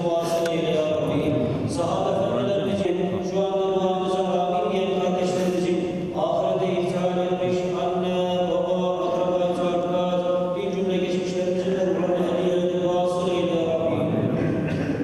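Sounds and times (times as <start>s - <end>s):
man chanting religious recitation: 0.0s - 14.7s.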